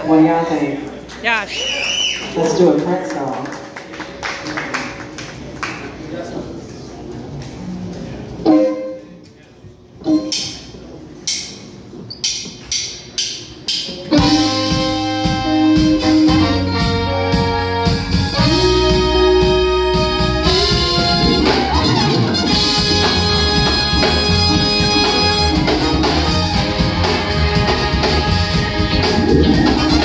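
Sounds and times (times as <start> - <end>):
live band with horns: 14.0 - 30.0.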